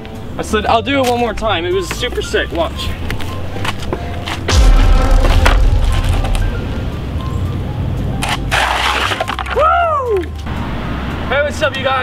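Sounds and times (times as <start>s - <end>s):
sharp cracks: 4.5s - 7.6s
loud low rumble: 4.5s - 8.2s.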